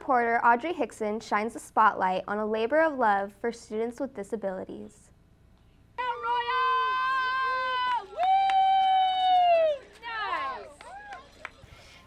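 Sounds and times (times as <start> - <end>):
woman cheering: 6.0 - 11.2.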